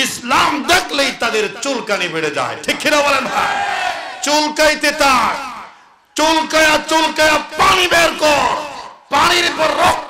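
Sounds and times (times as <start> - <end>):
man preaching into a microphone: 0.0 - 3.6, 4.2 - 10.0.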